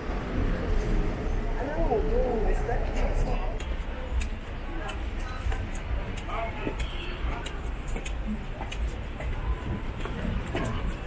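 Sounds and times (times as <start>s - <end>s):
low rumble of road traffic: 0.0s - 11.0s
passers-by talking: 0.0s - 11.0s.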